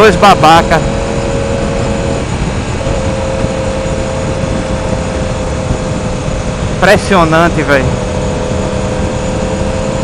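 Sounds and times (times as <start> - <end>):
motorcycle engine cruising: 0.0 - 10.0
wind rush on microphone: 0.0 - 10.0.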